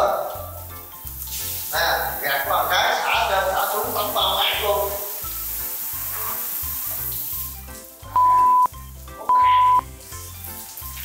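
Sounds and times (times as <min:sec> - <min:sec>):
water spraying from shower head: 0:00.0 - 0:08.2, 0:08.8 - 0:11.0
music beat: 0:08.1 - 0:09.9
loud steady beeps: 0:08.2 - 0:08.7, 0:09.3 - 0:09.8.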